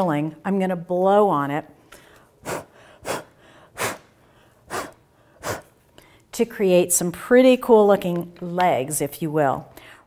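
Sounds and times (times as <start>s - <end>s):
woman blowing puffs of breath: 1.8s - 6.3s.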